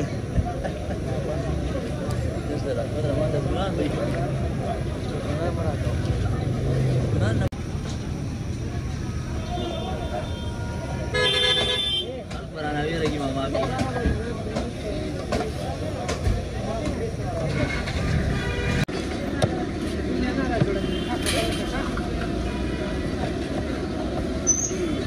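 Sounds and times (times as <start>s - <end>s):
road traffic noise: 0.0s - 25.0s
vehicle horn: 9.4s - 12.1s.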